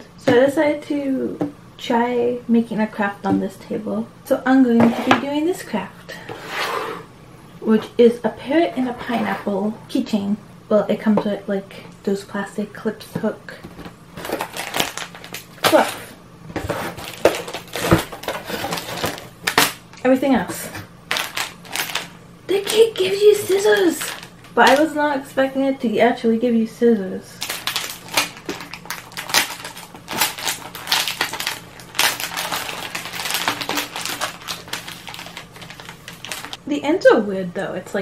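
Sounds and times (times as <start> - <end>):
plastic packaging rustling: 13.8 - 24.9, 27.4 - 36.6.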